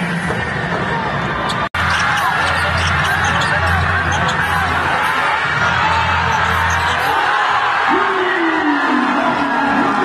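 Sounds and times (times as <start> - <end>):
arena crowd noise: 0.0 - 10.0
sneakers squeaking on hardwood: 1.4 - 5.3, 6.2 - 7.2.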